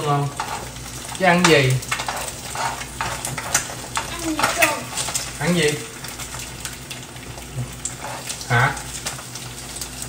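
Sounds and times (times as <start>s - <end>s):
utensil scraping a pan: 0.0s - 5.6s, 7.6s - 9.2s
eggs sizzling in a frying pan: 0.0s - 10.0s.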